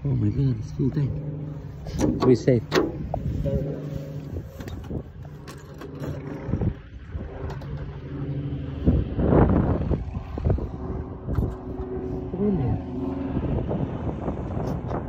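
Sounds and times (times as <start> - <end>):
light aircraft engine drone: 0.0 - 15.0
wind buffeting microphone: 0.0 - 15.0.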